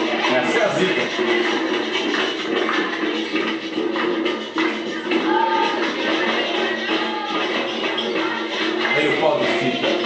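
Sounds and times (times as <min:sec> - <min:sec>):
folk music with singing and percussion: 0:00.0 - 0:10.0.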